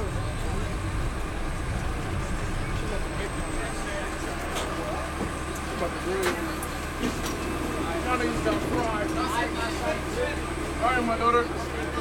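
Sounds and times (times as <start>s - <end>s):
passengers talking: 0.0s - 12.0s
subway car rumble: 0.0s - 12.0s.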